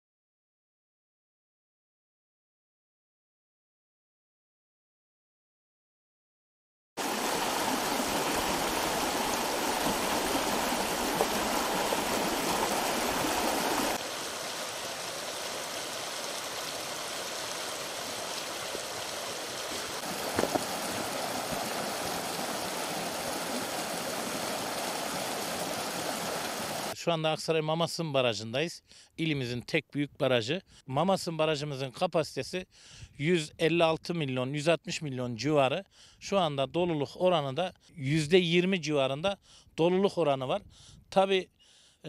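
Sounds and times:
stream running over rocks: 0:07.0 - 0:27.0.

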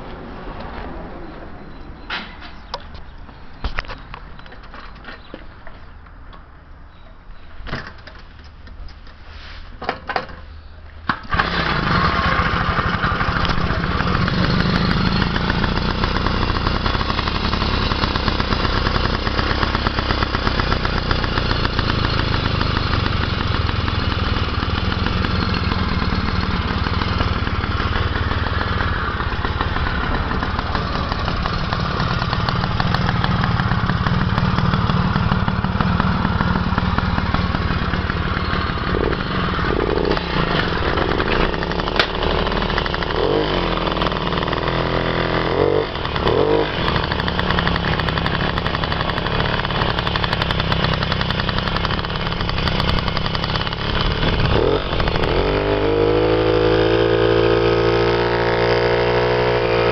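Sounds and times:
moped engine starting and running: 0:09.8 - 0:59.9.

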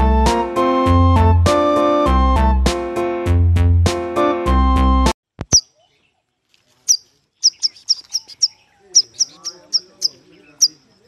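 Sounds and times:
young owl chirping: 0:06.8 - 0:11.0.

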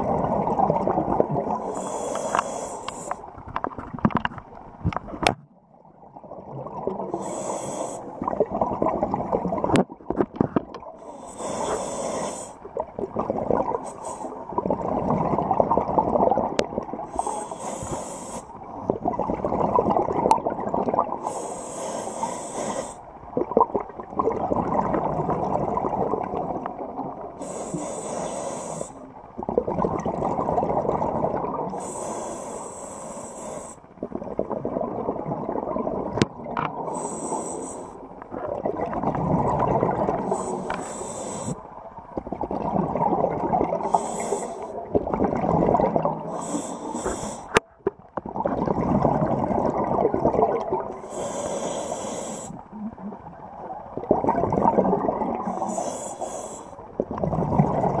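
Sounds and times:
regulator inhale hiss: 0:01.6 - 0:03.3, 0:07.1 - 0:08.2, 0:11.0 - 0:12.7, 0:13.8 - 0:14.5, 0:17.1 - 0:18.6, 0:21.2 - 0:23.1, 0:27.4 - 0:29.1, 0:31.7 - 0:33.9, 0:36.8 - 0:38.1, 0:40.2 - 0:41.7, 0:43.8 - 0:44.8, 0:46.3 - 0:47.6, 0:50.9 - 0:52.7, 0:55.4 - 0:56.9
bubbling exhaled air: 0:10.8 - 0:58.0.

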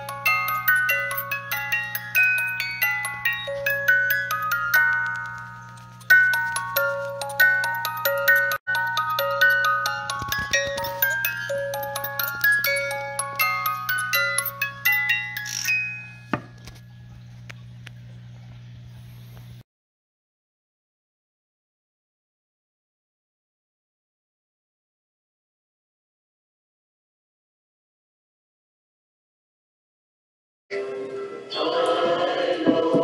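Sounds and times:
music box playing a tune: 0:00.0 - 0:16.8
faint low hum: 0:16.4 - 0:19.6.

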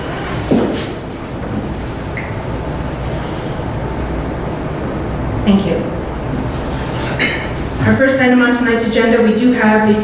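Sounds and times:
room tone hiss and hum: 0:00.0 - 0:10.0.

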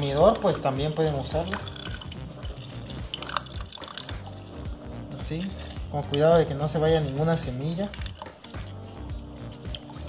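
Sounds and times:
background music: 0:00.0 - 0:10.0
juice dripping into plastic cup: 0:00.0 - 0:10.0.

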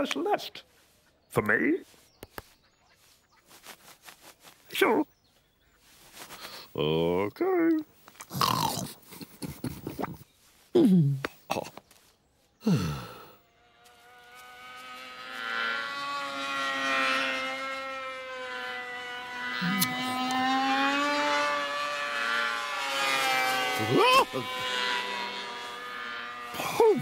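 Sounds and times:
propeller aircraft engine buzzing: 0:12.8 - 0:27.0.

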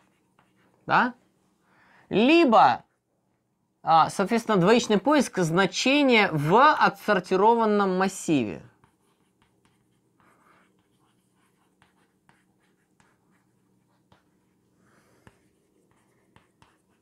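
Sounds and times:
chalk tapping and scratching on board: 0:08.7 - 0:14.6, 0:15.2 - 0:17.0.

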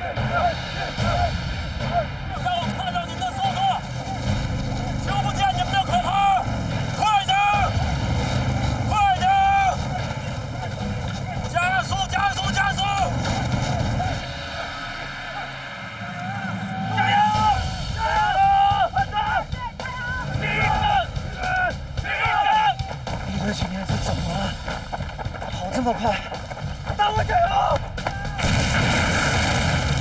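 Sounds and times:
people shouting: 0:00.0 - 0:23.1, 0:26.9 - 0:28.6
buggy engine rumbling: 0:00.0 - 0:30.0
man shouting: 0:05.1 - 0:07.8, 0:08.8 - 0:10.0, 0:11.6 - 0:13.2, 0:16.3 - 0:22.8
explosion: 0:28.4 - 0:30.0.

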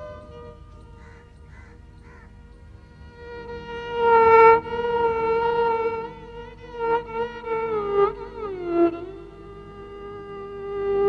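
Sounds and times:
held melodic music note: 0:00.0 - 0:02.8.

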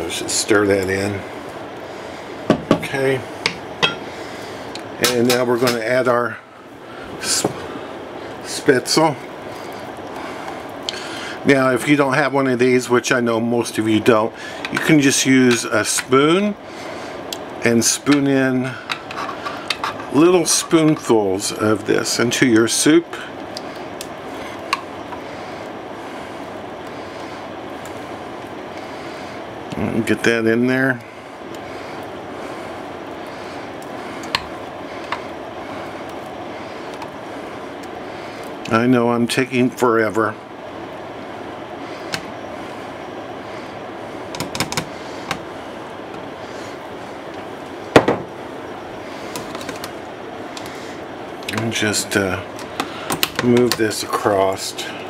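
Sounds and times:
stovetop rushing noise: 0:00.0 - 0:55.0.

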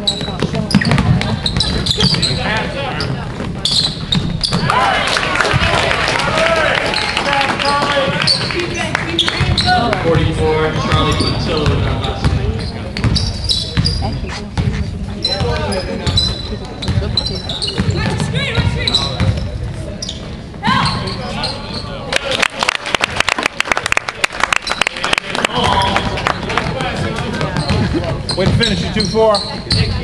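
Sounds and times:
basketball dribbled on hardwood: 0:00.1 - 0:02.2
spectators' voices and shouts: 0:04.6 - 0:12.9, 0:13.8 - 0:22.9.

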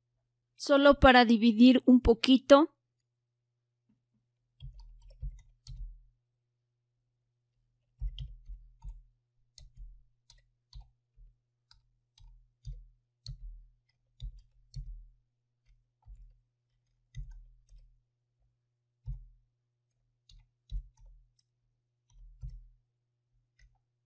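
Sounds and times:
computer keyboard typing: 0:04.6 - 0:06.0, 0:08.0 - 0:10.9.

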